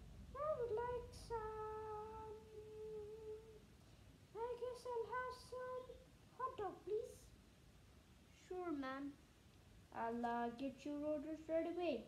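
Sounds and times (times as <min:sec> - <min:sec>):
girl humming: 0:00.4 - 0:03.6.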